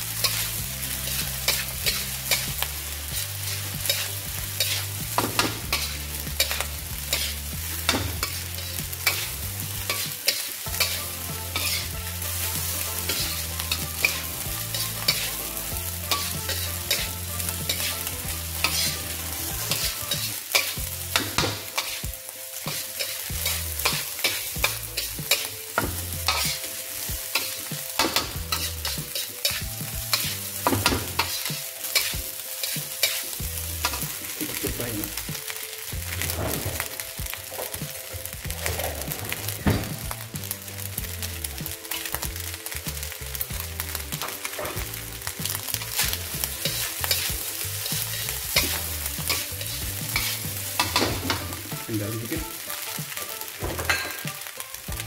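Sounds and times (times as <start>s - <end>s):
metal spatula scraping a wok: 0.0s - 42.8s, 43.4s - 54.6s
rice sizzling in a wok: 0.0s - 55.0s.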